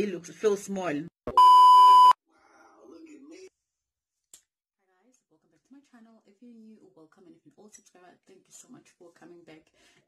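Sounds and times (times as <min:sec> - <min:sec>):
high test-tone beep: 0:01.3 - 0:02.2.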